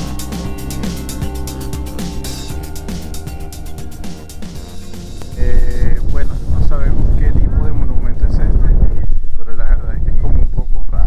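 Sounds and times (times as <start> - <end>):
background music: 0.0 - 8.6
people talking: 5.4 - 11.0
wind rumbling on microphone: 5.4 - 11.0.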